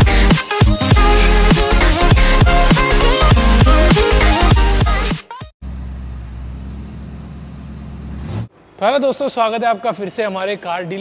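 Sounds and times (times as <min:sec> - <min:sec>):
car engine idling: 0:05.6 - 0:08.5.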